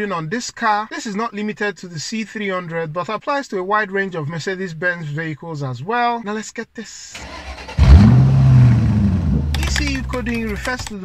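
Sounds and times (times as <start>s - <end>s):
car engine starting and running: 7.2s - 10.8s.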